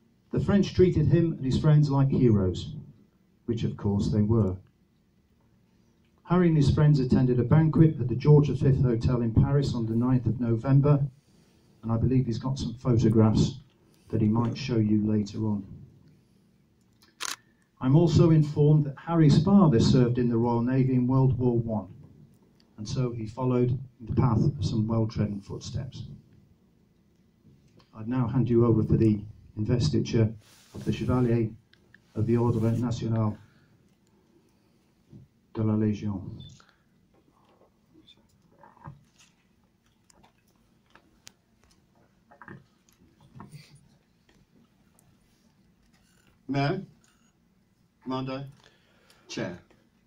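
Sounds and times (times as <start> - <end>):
man speaking: 0.3 - 2.9, 3.5 - 4.6, 6.3 - 11.2, 11.8 - 15.8, 17.8 - 22.0, 22.8 - 26.2, 27.9 - 33.4, 35.5 - 36.7, 46.5 - 47.0, 48.0 - 48.6, 49.3 - 49.7.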